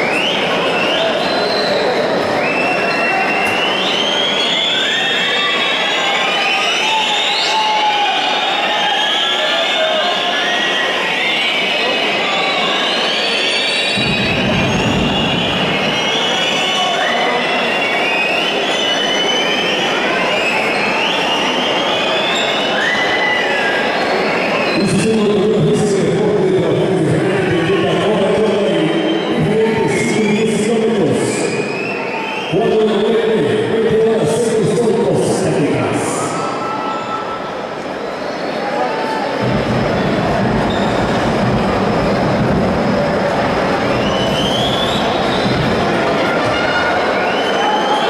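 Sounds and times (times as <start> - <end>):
whistles sliding in pitch: 0.0 - 25.6, 28.2 - 33.3, 36.1 - 42.4, 43.0 - 48.0
arena crowd din: 0.0 - 48.0.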